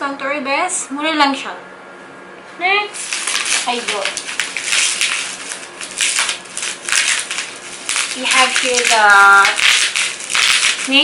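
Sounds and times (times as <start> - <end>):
bubble wrap crinkling: 2.9 - 11.0.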